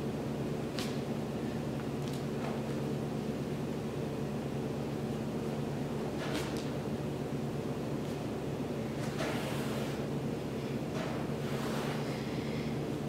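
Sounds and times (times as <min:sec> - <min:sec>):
low room hum: 0:00.0 - 0:13.0
heavy breathing: 0:11.5 - 0:12.9.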